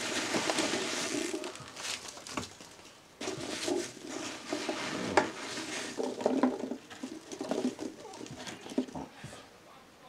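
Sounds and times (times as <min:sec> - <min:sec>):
plastic tubs and packing handled: 0:00.0 - 0:09.5.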